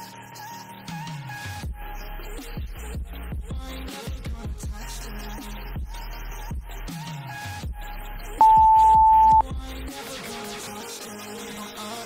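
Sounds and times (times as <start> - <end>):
hip-hop music with heavy beat: 0.0 - 12.0
interval timer beep: 8.4 - 9.4.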